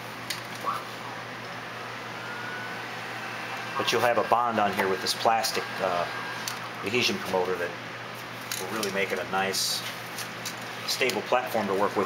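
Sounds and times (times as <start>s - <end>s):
heat gun blowing air: 2.1s - 6.9s.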